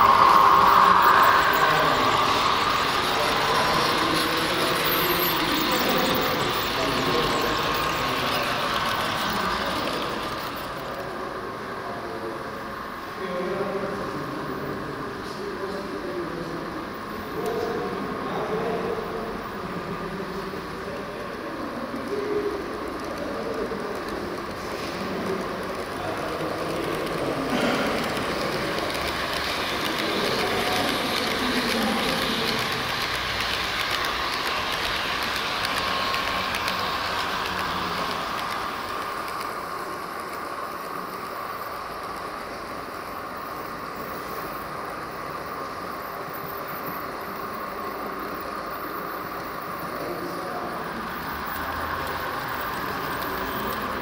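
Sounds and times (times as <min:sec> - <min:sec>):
model train whirring: 0:00.0 - 0:54.0.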